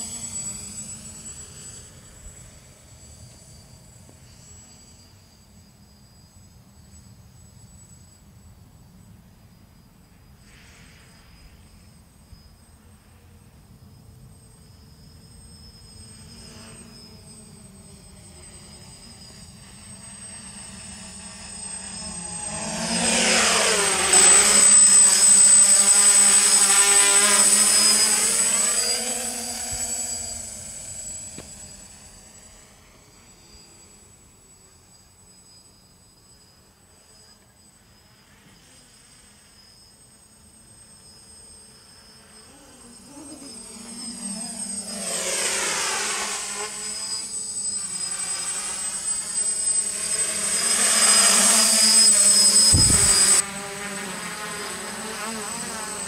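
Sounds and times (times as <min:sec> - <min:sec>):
drone propellers buzzing: 0:00.0 - 0:05.7, 0:14.2 - 0:35.6, 0:38.4 - 0:56.0.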